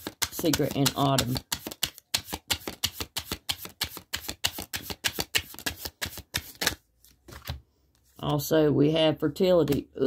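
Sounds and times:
cards being shuffled: 0.0 - 8.4, 9.6 - 9.9.

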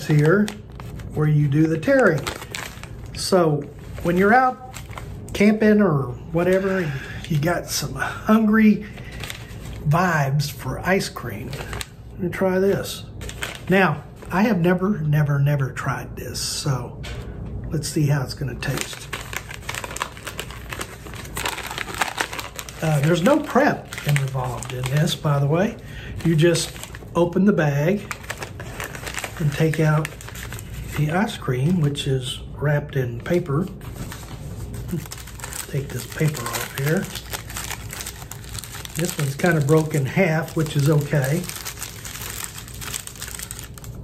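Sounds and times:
food pouch crinkling: 0.0 - 5.2, 18.6 - 25.4, 26.2 - 27.1, 28.0 - 31.1, 33.8 - 44.0.

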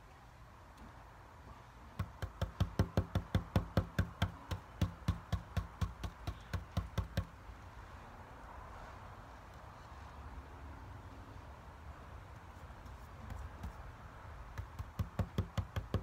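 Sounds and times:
paintbrush tapping through stencil: 14.6 - 16.0.

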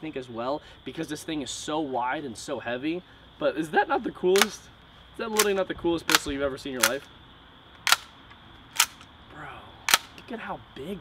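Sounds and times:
airsoft pistol mechanical clicks: 4.3 - 4.6, 5.3 - 7.1, 7.7 - 9.1, 9.9 - 10.3.

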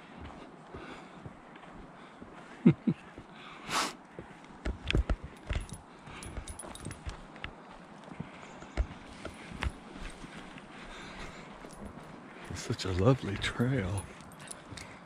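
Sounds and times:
footsteps on dirt trail: 0.0 - 15.0.

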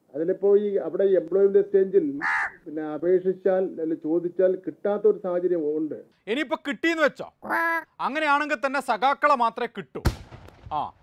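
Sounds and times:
man speaking: 0.0 - 10.1
crow cawing: 2.2 - 2.6.

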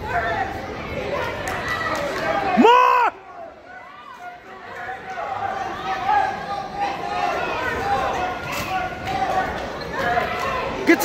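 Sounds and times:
spectators talking and calling out: 0.0 - 11.0.

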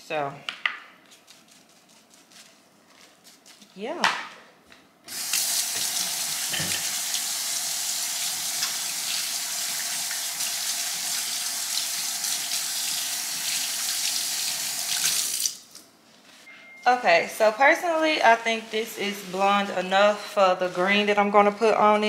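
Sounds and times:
faucet water running: 5.1 - 15.6.

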